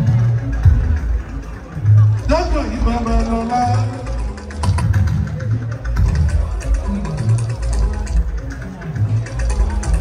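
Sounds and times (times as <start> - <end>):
deep bass line: 0.0 - 10.0.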